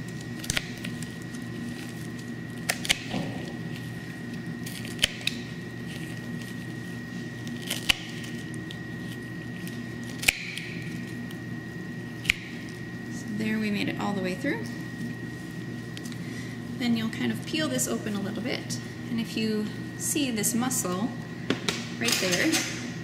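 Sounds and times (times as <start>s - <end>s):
pruning shears snapping through ribs: 0.4s - 1.0s, 10.1s - 10.7s.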